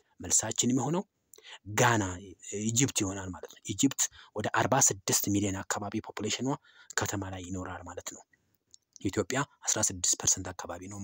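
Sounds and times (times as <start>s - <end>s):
person speaking: 0.2s - 6.4s, 8.8s - 11.0s.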